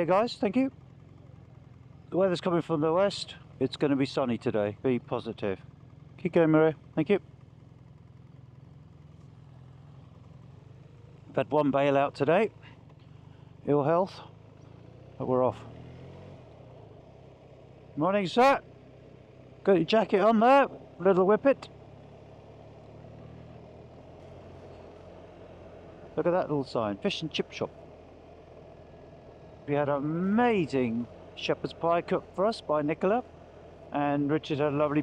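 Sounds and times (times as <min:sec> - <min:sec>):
motorcycle engine idling: 0:00.0 - 0:35.0.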